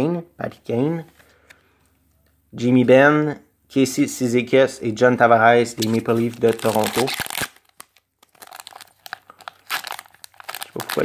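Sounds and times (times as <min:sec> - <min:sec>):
wrapper crinkling and tearing: 0:05.8 - 0:11.0.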